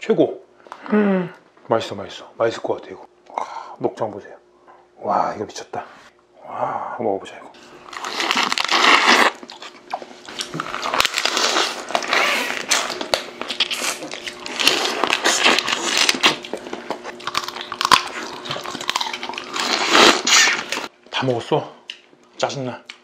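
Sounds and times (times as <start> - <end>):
wet chewing: 7.8 - 20.9
crab shell crunching: 7.9 - 20.9.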